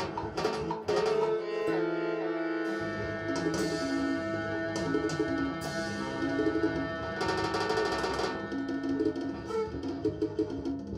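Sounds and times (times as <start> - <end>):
sustained synth tones: 0.0 - 10.4
percussive synth hits: 3.1 - 10.9.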